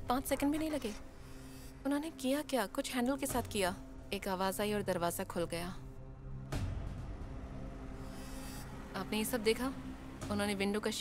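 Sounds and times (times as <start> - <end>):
faint music drone: 0.0 - 11.0.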